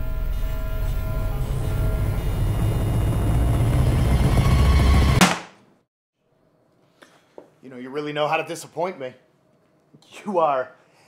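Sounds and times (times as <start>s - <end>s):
low rumbling drone: 0.0s - 5.2s.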